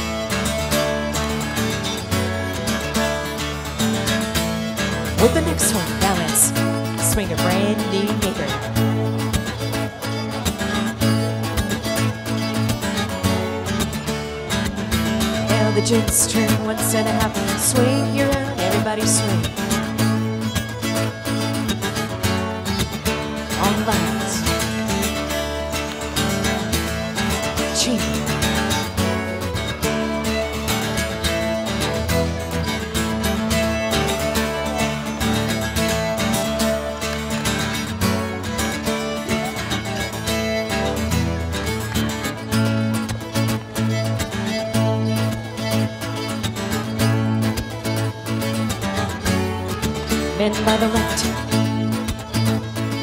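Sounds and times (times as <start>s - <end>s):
acoustic guitar: 0.0s - 53.0s
fiddle: 0.0s - 53.0s.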